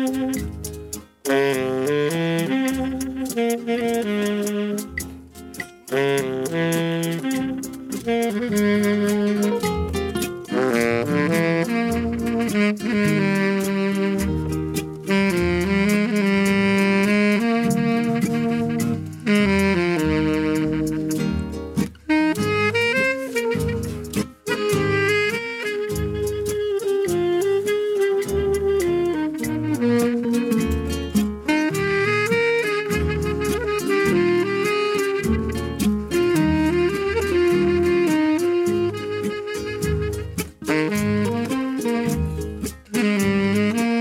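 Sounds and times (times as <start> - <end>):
saxophone playing a melody: 0.0 - 44.0
strummed guitar: 0.0 - 44.0.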